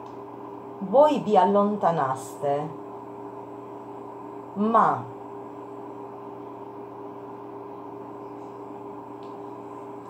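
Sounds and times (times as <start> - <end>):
electrical hum: 0.0 - 10.0.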